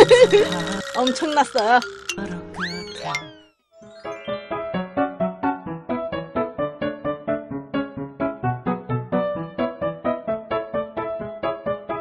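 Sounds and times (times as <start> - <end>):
cartoon boing sound effect: 0.0 - 4.3
bouncy music with plucked notes: 0.0 - 12.0.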